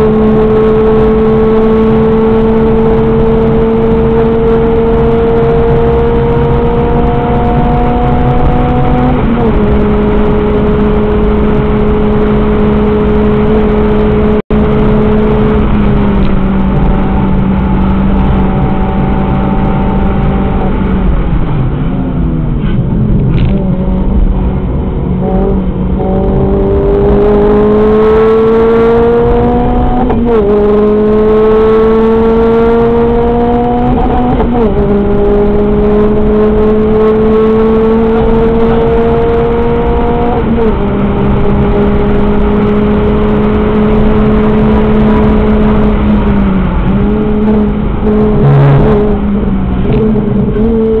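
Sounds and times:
car engine accelerating: 0:00.0 - 0:51.0
road and wind noise: 0:00.0 - 0:51.0.

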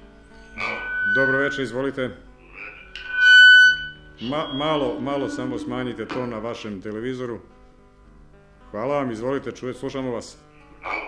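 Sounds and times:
whistling feedback tone: 0:00.5 - 0:06.6.

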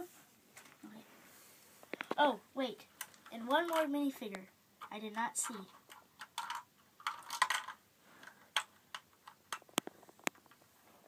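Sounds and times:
plastic parts rustling scrapes: 0:05.4 - 0:10.6.

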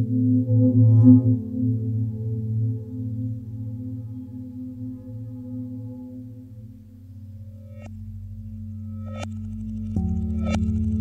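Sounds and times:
low electronic drone tones: 0:00.0 - 0:11.0.

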